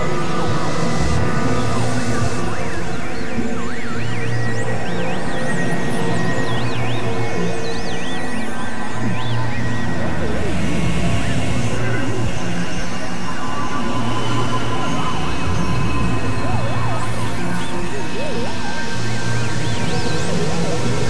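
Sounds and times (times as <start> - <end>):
low synthesizer drone: 0.0 - 21.0.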